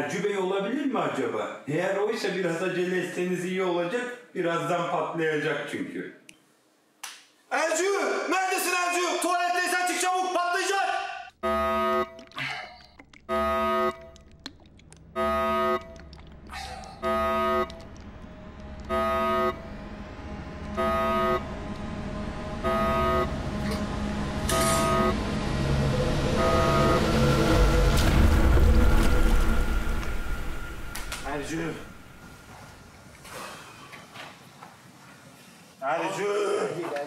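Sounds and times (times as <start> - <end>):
horn-like warning tone: 11.4 - 12.4, 13.3 - 14.2, 15.2 - 16.0, 16.9 - 27.9
low rumbling noise: 13.0 - 33.3.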